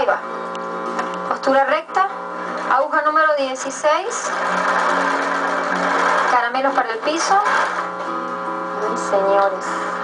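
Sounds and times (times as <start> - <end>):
electric sewing machine running: 2.4 - 10.0.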